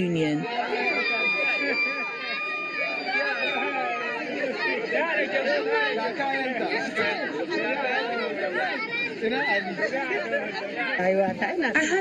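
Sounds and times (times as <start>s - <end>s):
people talking over each other: 0.0s - 12.0s.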